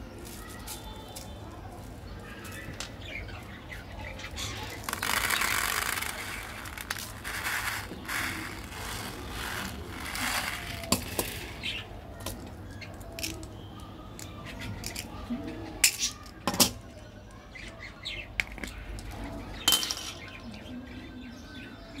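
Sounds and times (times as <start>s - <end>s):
sprinkles rattling from bottle: 4.7s - 11.5s.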